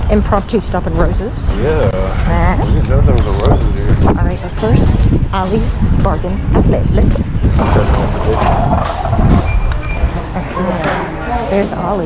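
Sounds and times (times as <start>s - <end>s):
wind rumbling on microphone: 0.0s - 10.4s
background music: 0.0s - 12.0s.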